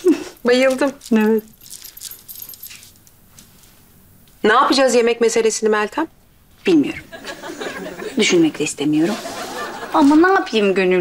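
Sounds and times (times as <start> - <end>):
bracelets jingling: 0.0 - 3.6.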